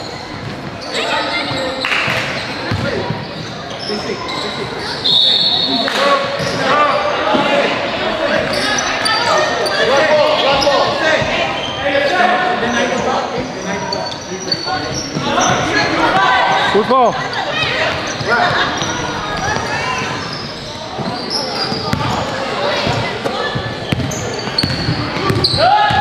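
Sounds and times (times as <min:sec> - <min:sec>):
basketball bouncing on court: 0:02.1 - 0:03.2, 0:21.0 - 0:26.0.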